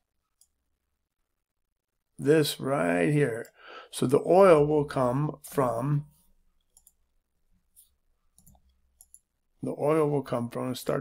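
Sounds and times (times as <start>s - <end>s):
faint computer mouse clicks: 6.6s - 7.0s.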